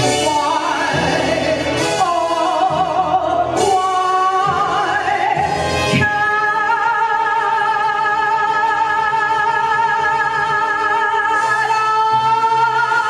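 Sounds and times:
backing music: 0.0 - 13.0
person singing with vibrato: 0.0 - 13.0.

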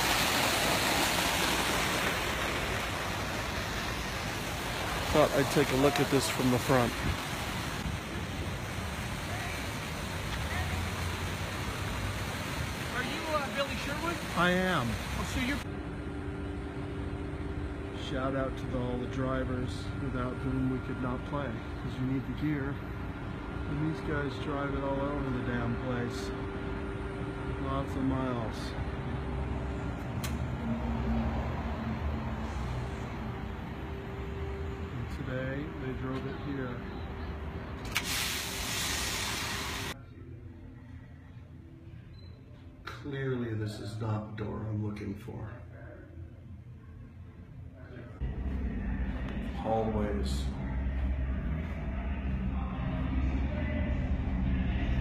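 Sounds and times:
constant hiss: 0.0 - 28.8
low even hum: 15.6 - 31.2, 45.4 - 55.0.

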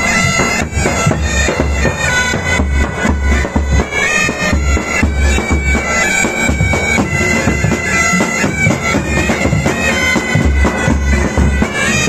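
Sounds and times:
bagpipes playing over drone: 0.0 - 12.0.

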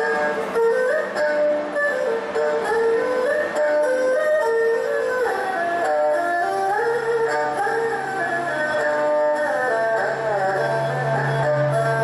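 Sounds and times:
erhu melody with slides: 0.0 - 12.0.

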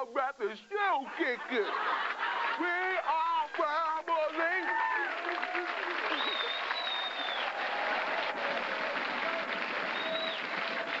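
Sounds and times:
audience applauding: 2.3 - 11.0
shrill whistle: 6.1 - 7.6, 9.9 - 10.5.

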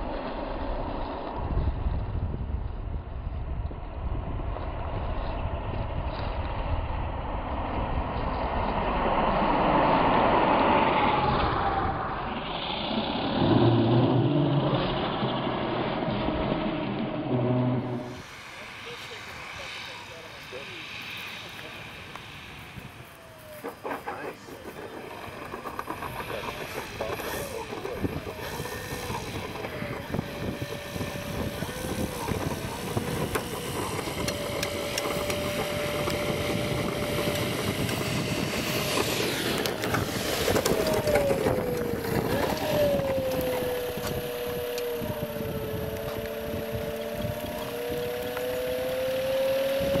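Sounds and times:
electric motor and propeller whining: 0.0 - 50.0
wind noise: 0.0 - 50.0.

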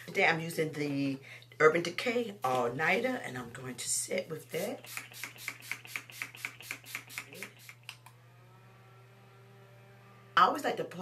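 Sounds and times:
spray bottle misting: 4.5 - 7.9
small handheld fan whirring: 4.6 - 10.5.

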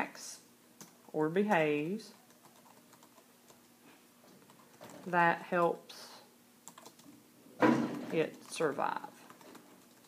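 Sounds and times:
person speaking: 1.1 - 2.4, 4.5 - 6.4, 7.9 - 9.4.

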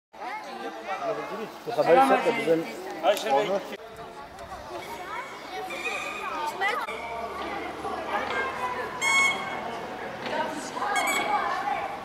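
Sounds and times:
children and adults chattering: 0.2 - 12.0.

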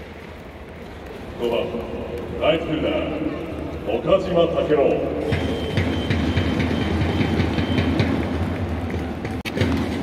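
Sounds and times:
electronic whistle high tone: 5.2 - 8.0
taiko drums beating: 5.2 - 10.0
snare drum beating: 5.3 - 10.0.

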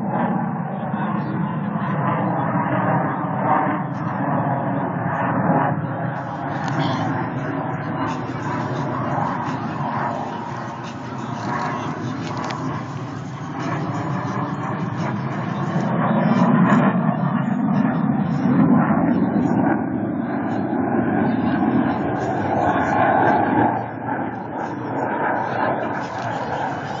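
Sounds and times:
jet engine rumble: 0.0 - 27.0
people's voices: 0.6 - 27.0.

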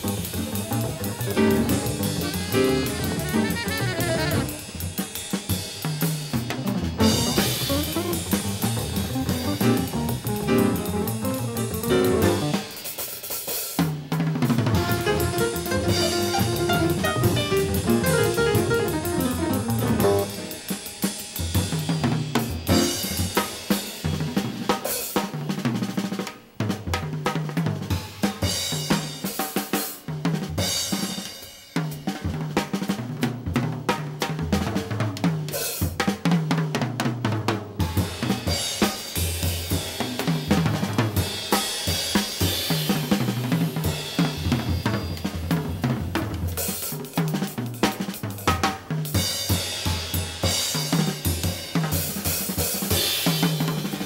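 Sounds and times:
jazz drum kit playing: 0.0 - 54.0.

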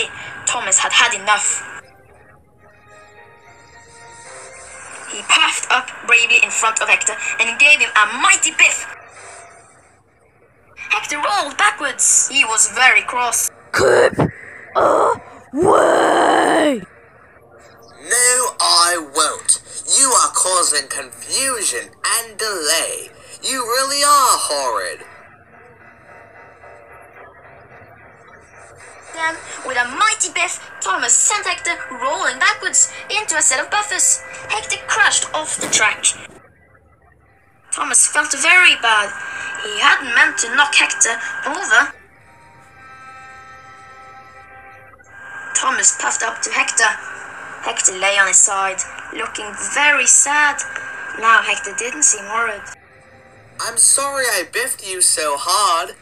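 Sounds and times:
soft sustained music chord: 1.8 - 7.5, 38.4 - 45.9, 48.3 - 56.0
person speaking: 13.8 - 16.9, 53.6 - 56.0
drawn-out angry groan: 14.8 - 16.9.

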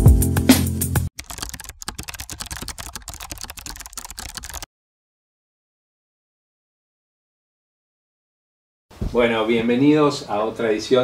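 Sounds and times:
computer keyboard typing: 1.2 - 4.7.

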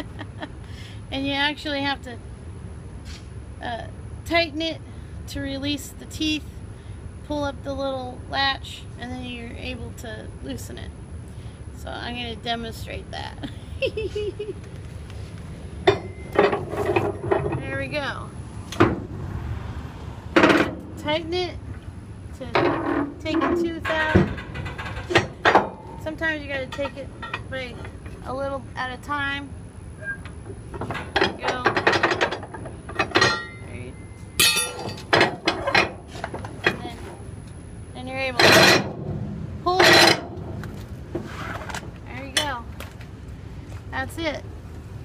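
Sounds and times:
winch metallic clank: 15.8 - 19.2, 22.4 - 28.4, 30.0 - 37.2.

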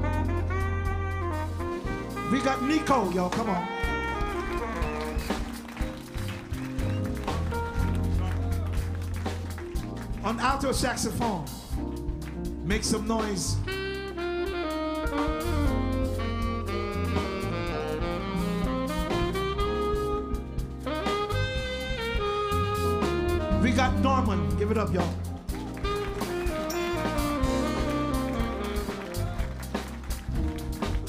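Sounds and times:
alto saxophone solo: 0.0 - 10.2, 13.2 - 31.0
band bass and drums: 0.0 - 31.0.

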